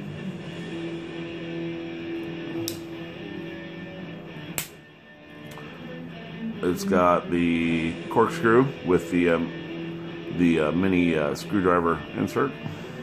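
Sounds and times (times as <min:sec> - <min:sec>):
soft background music: 0:00.0 - 0:13.0.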